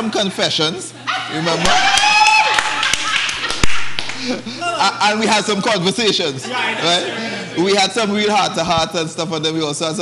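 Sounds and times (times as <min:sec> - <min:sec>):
group of people laughing: 0:00.9 - 0:08.3
hand claps: 0:01.6 - 0:04.4.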